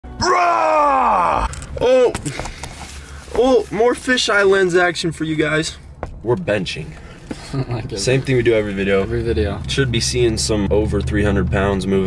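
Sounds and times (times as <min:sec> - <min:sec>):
man groaning: 0:00.2 - 0:02.2.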